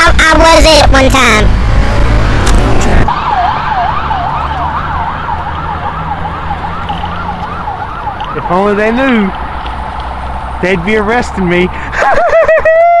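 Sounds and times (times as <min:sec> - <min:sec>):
emergency siren yelping: 0:02.8 - 0:09.2.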